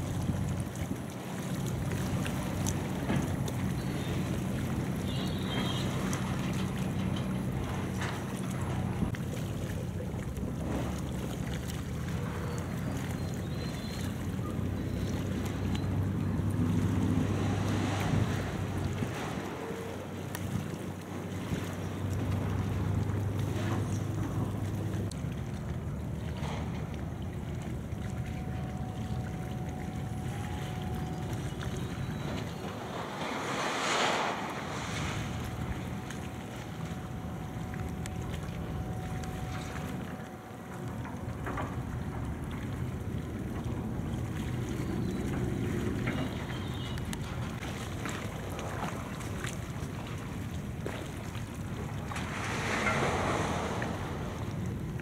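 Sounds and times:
crane engine hum: 0.0 - 55.0.

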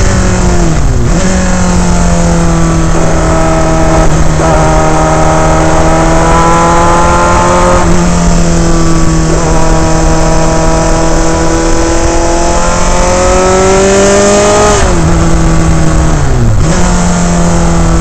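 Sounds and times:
racing car engine: 0.0 - 18.0
wind and road noise rumble: 0.0 - 18.0.

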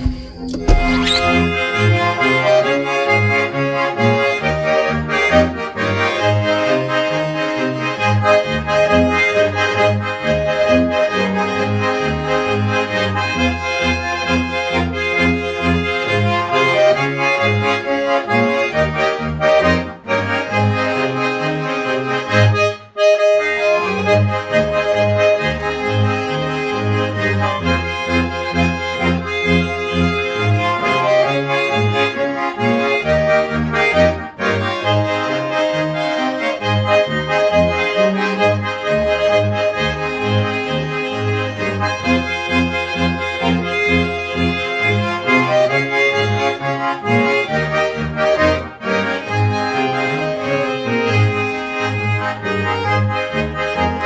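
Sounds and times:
button accordion folk tune: 0.0 - 54.0.

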